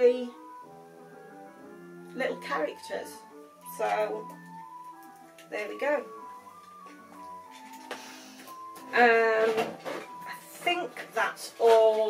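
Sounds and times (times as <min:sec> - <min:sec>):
slow background music: 0:00.0 - 0:12.0.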